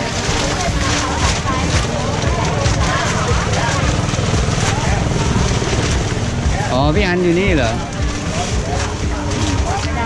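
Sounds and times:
people talking in background: 0.0 - 10.0
man's voice: 6.5 - 8.6.

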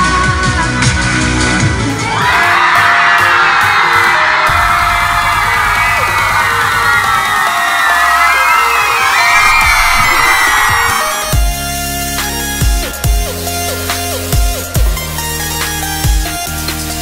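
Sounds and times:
pop music: 0.0 - 17.0
crowd screaming and cheering: 1.6 - 12.1.

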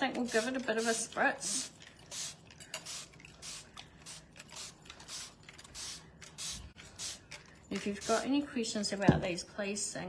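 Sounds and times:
spray bottle spritzing: 0.2 - 8.3.

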